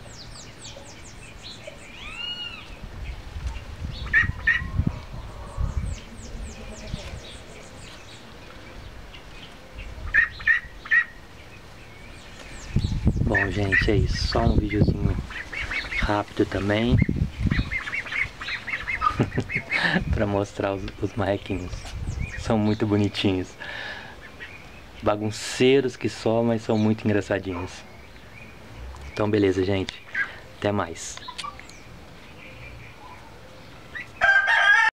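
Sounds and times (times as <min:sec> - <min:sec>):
small birds chirping: 0:00.0 - 0:34.3
ducklings peeping: 0:00.0 - 0:34.6
rooster crowing: 0:34.2 - 0:34.9.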